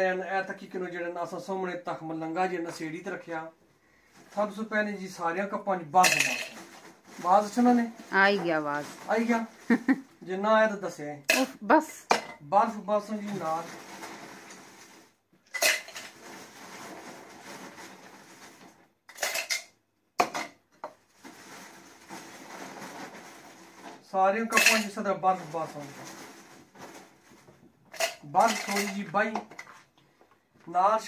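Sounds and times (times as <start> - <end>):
ice cubes clattering into blender cup: 6.0 - 6.7, 15.5 - 19.7, 28.0 - 29.8
voices talking: 8.2 - 8.8
ice rattling in cup: 13.3 - 19.5, 21.2 - 27.0.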